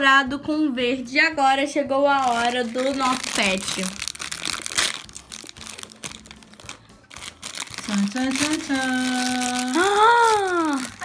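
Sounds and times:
plastic wrapper crinkling: 2.2s - 11.0s.

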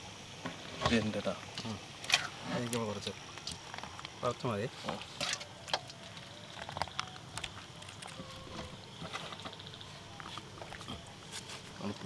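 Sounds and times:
low steady hiss: 0.0s - 12.0s
eating by hand clicks and rustles: 5.3s - 9.6s.

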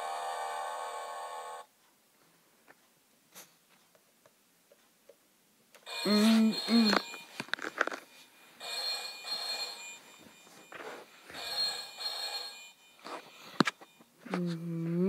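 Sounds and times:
trilling telephone ring: 5.9s - 7.4s, 8.6s - 14.1s.

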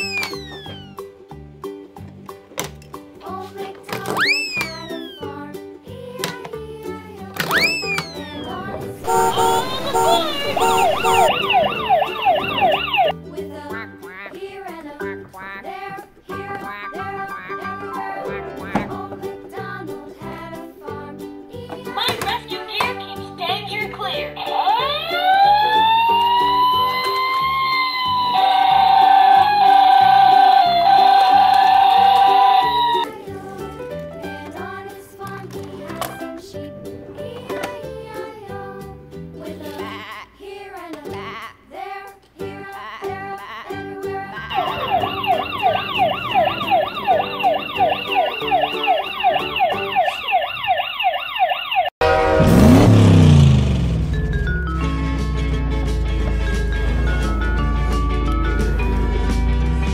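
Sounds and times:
children's background music: 0.0s - 50.7s, 54.0s - 59.9s
fire engine siren wailing: 7.5s - 13.2s, 24.4s - 33.1s, 44.4s - 54.4s
whoosh with falling tone: 9.6s - 13.1s, 44.5s - 50.7s
pitched sliding sound effect: 44.5s - 49.9s.

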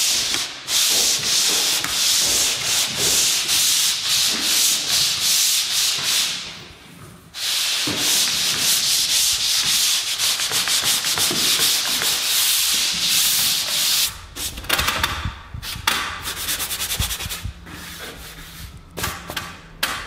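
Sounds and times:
pole sander rubbing drywall: 0.0s - 6.6s, 7.3s - 19.4s.

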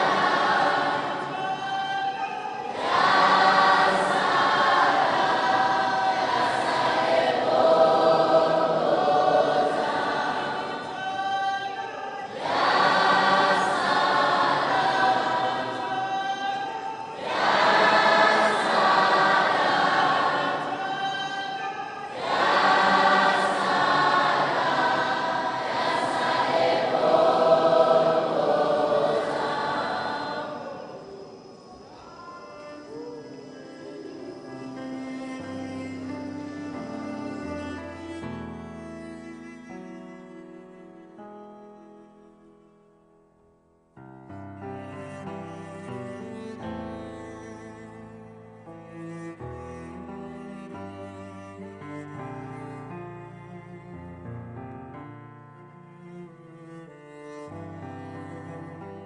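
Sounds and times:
choir singing: 0.0s - 38.5s.

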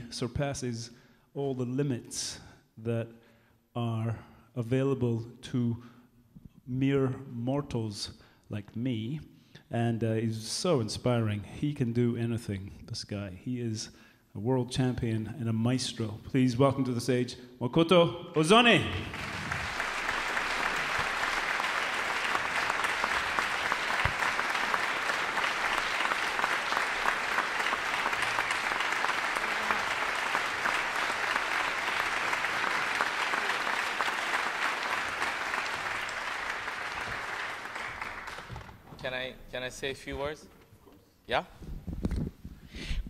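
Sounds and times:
audience applauding: 18.4s - 38.8s.

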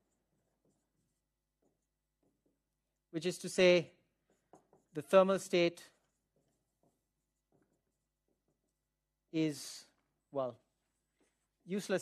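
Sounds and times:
marker on whiteboard: 0.0s - 12.0s.

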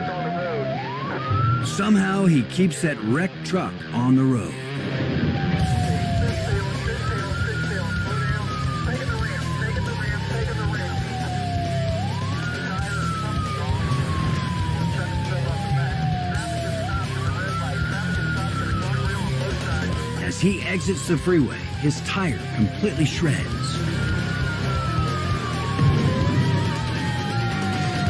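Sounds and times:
background music: 0.0s - 28.0s
police siren wailing: 0.0s - 28.0s.

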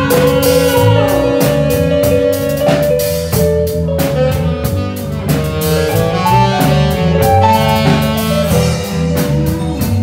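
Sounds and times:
drum kit: 0.0s - 10.0s
electric bass: 0.0s - 10.0s
electric guitar: 0.0s - 10.0s
saxophone holding notes: 0.0s - 10.0s.

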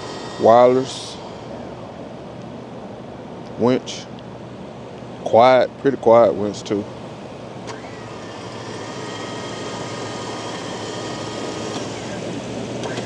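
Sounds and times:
electric winch motor whine: 0.0s - 2.2s, 7.3s - 13.0s.

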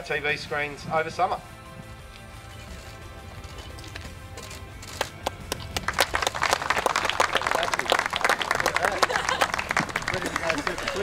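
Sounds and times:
faint music: 0.0s - 11.0s
clapping and applause: 4.9s - 11.0s.

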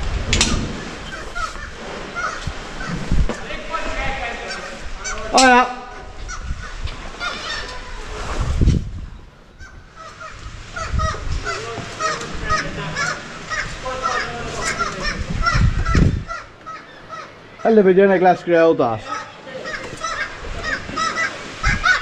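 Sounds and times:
low rumbles: 0.0s - 5.3s, 5.9s - 17.6s
seabird colony calling: 0.0s - 8.2s, 9.4s - 22.0s.

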